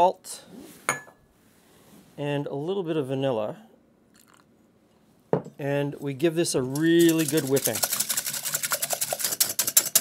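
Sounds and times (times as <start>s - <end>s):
whisk clicking against glass: 6.8s - 10.0s.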